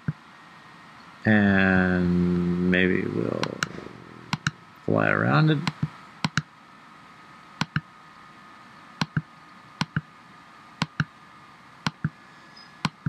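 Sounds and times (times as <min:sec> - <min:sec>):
mouse button clicking: 0:04.3 - 0:04.6, 0:05.6 - 0:06.5, 0:07.6 - 0:07.8, 0:09.0 - 0:09.2, 0:09.8 - 0:10.0, 0:10.8 - 0:11.1.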